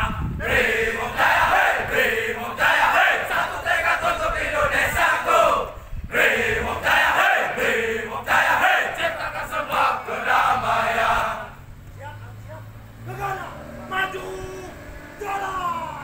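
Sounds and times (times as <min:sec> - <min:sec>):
group chanting war cry in unison: 0:00.0 - 0:11.6.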